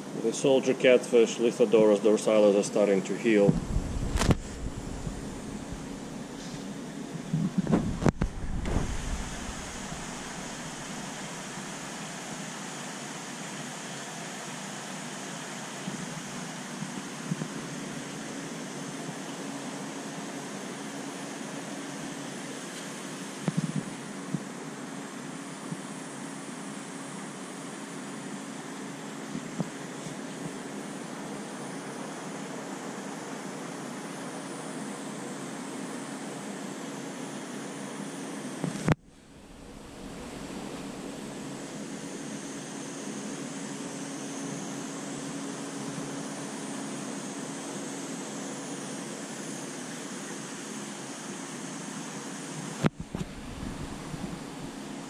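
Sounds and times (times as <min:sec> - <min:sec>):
steady mechanical hum: 0:00.0 - 0:55.0.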